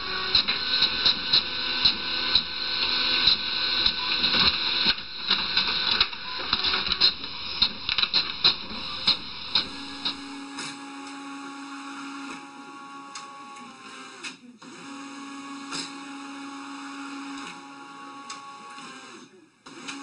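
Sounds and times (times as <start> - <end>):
printer whirring: 0.0 - 20.0.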